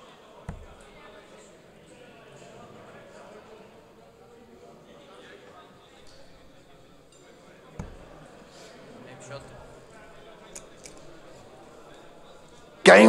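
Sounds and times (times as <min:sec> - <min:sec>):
crowd murmur in large hall: 0:00.0 - 0:13.0
darts striking dartboard: 0:00.5 - 0:01.0, 0:07.8 - 0:08.2
dull thud: 0:00.5 - 0:01.0.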